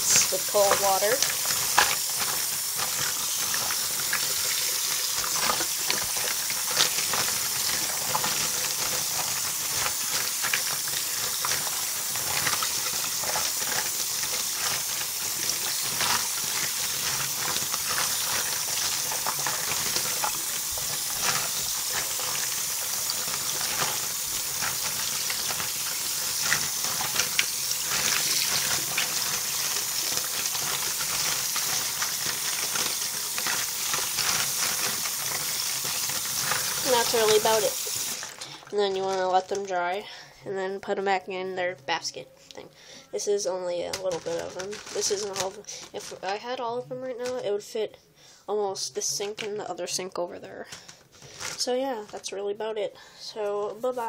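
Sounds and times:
tap water running into sink: 0.0 - 38.6.

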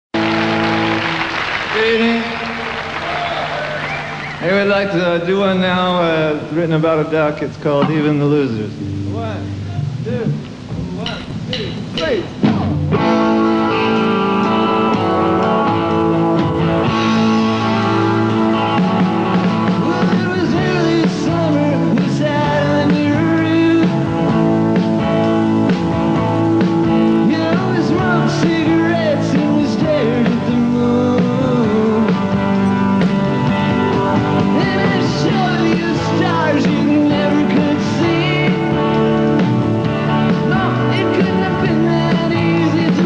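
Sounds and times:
audience applauding: 0.1 - 4.7
rock band chord: 0.2 - 4.6, 7.8 - 43.0.

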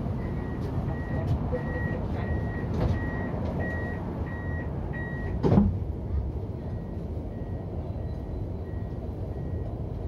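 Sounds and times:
tram door warning beeps: 0.0 - 5.5, 6.4 - 10.0.

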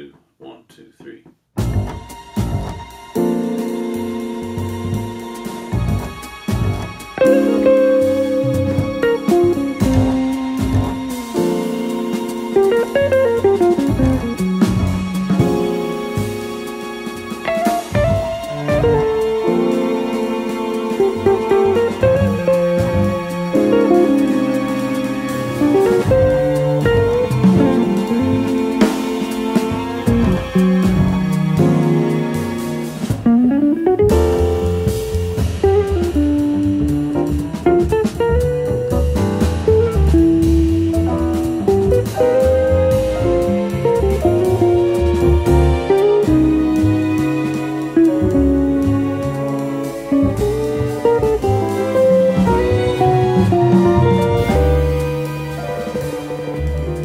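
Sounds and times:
bass: 0.0 - 57.0
drums: 1.6 - 57.0
jazz guitar run: 1.6 - 57.0
string quartet: 1.6 - 57.0.

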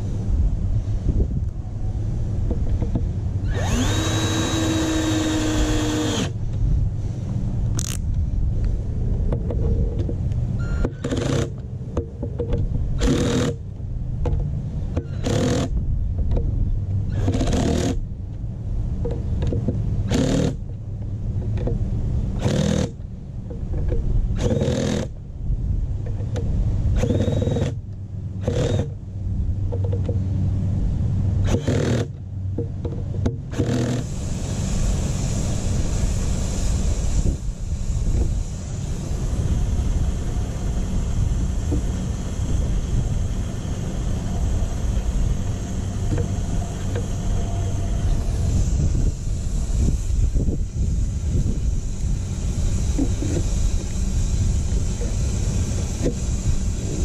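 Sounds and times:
steady rushing noise: 0.0 - 15.0, 32.2 - 57.0
steady low hum: 0.0 - 57.0
cordless drill driving screws: 3.5 - 6.4, 15.1 - 15.7, 20.1 - 20.6, 22.4 - 22.9, 24.4 - 25.1, 27.0 - 27.8, 28.4 - 28.9, 31.5 - 32.1.

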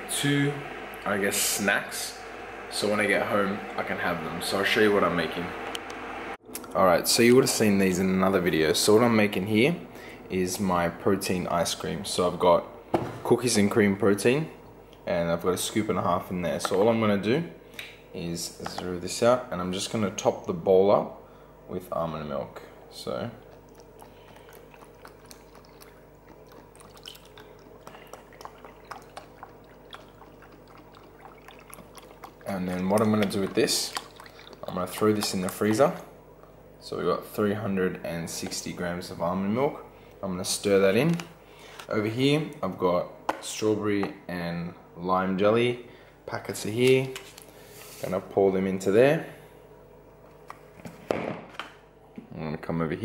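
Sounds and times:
steady low hum: 0.0 - 53.0
milk pouring into a bowl: 23.5 - 35.9.

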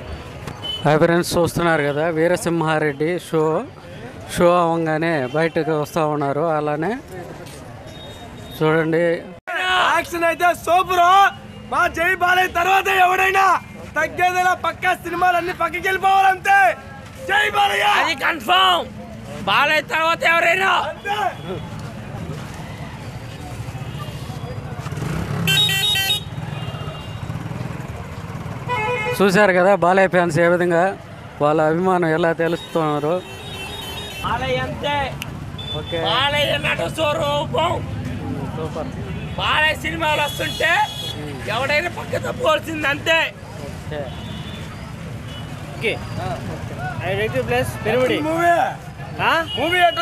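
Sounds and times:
motorcycle engines rumbling: 0.0 - 50.0
street traffic: 0.0 - 50.0.

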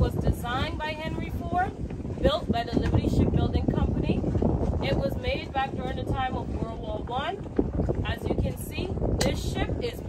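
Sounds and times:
boat engine rumble: 0.0 - 10.0
wind on microphone: 0.0 - 10.0.

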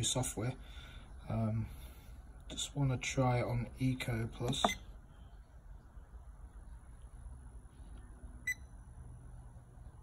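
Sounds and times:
low room hum: 0.0 - 10.0
short electronic beep: 8.4 - 8.7.

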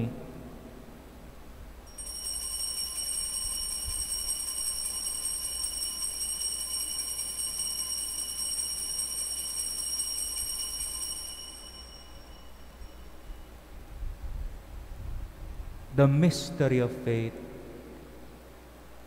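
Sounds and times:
altar bells ringing: 1.9 - 13.7.

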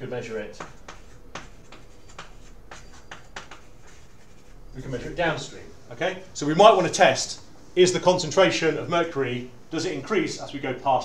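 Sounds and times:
pen scratching on paper: 0.6 - 4.6.

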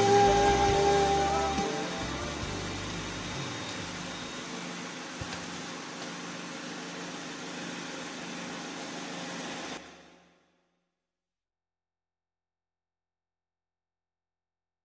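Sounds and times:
low note of backing track: 0.0 - 4.4.

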